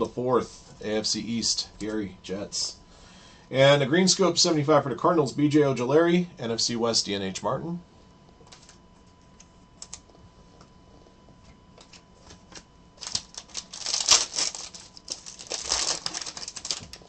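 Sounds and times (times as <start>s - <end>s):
foil packs rustling: 11.8s - 17.0s.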